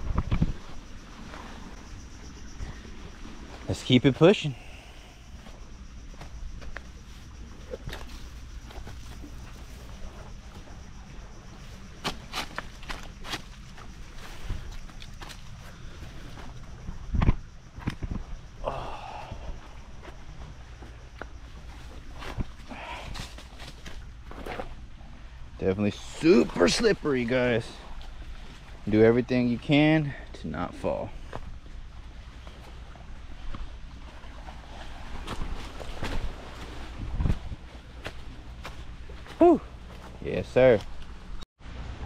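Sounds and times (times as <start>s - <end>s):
footsteps on leafy dirt trail: 4.6s - 10.9s, 11.6s - 16.6s, 19.9s - 24.8s, 35.0s - 41.2s.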